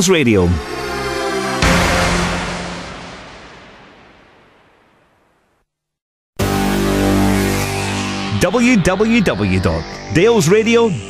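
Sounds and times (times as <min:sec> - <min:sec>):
jingle crash-like closing hit: 0:00.6 - 0:04.9.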